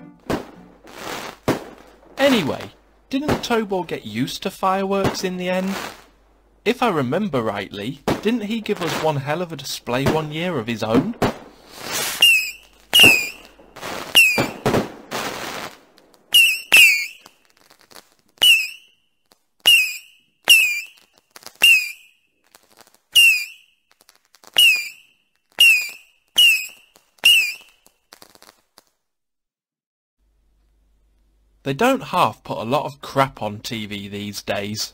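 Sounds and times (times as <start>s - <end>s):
fireworks bangs with falling whistle: 0.1s - 2.6s, 11.0s - 17.8s, 18.4s - 19.0s, 19.6s - 28.6s
fireworks hissing whooshes: 0.3s - 3.5s, 5.0s - 6.8s, 8.0s - 18.8s.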